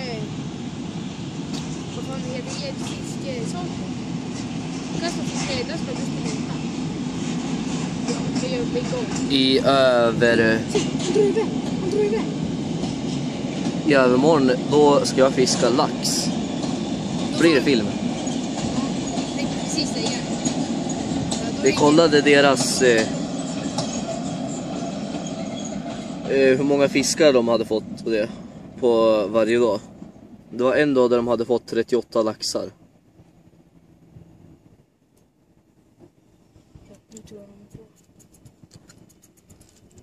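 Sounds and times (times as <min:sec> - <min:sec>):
freight train rumbling past: 0:00.0 - 0:38.6.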